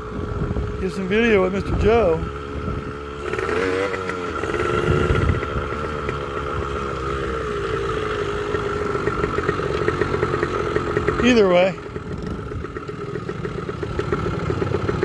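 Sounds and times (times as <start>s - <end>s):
motorcycle engine: 0.0s - 15.0s.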